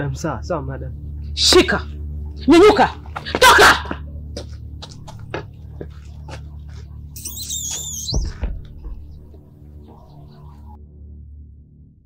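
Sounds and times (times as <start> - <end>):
high wavering whistle-like tone: 7.2 - 8.2.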